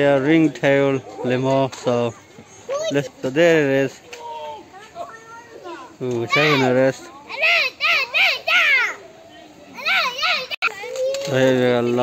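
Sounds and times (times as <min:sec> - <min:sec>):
child calling: 0:07.3 - 0:09.0, 0:09.8 - 0:11.3.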